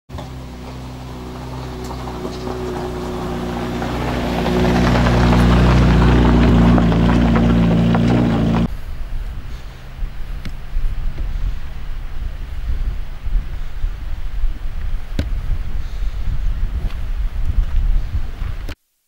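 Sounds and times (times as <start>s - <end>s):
helicopter approaching: 0.1s - 8.7s.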